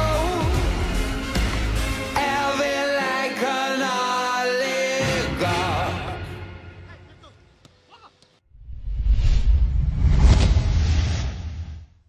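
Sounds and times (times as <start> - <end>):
deep rumbling whoosh: 8.5 - 12.0.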